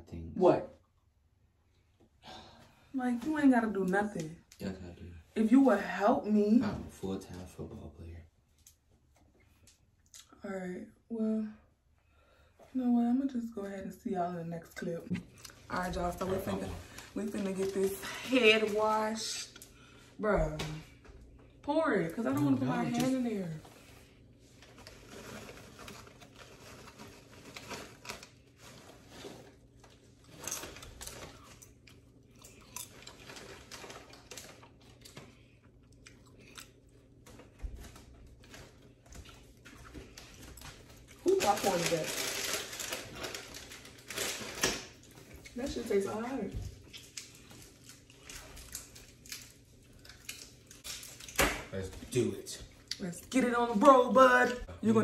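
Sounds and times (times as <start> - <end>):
person speaking: 22.1 - 23.6, 51.9 - 55.0
plastic chip bag crinkling: 24.5 - 35.3, 36.7 - 46.2, 46.8 - 51.4
chips crunching: 30.2 - 35.2.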